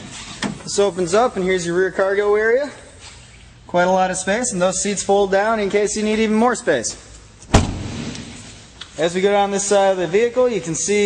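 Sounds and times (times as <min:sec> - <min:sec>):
car door slamming: 0:07.5 - 0:08.5.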